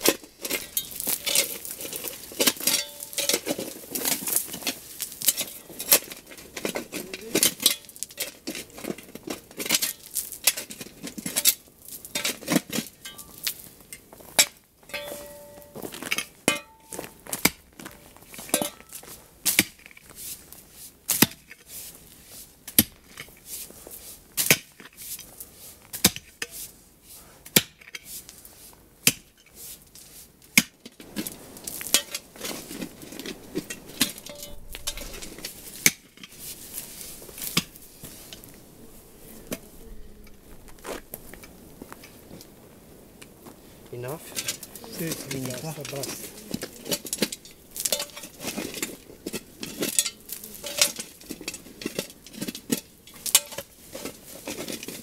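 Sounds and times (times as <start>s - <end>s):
metal tool striking stony ground: 0.0s - 13.6s, 14.4s - 19.9s, 21.1s - 21.6s, 24.4s - 24.8s, 27.5s - 28.1s, 29.0s - 29.4s, 30.6s - 38.5s, 44.3s - 55.0s.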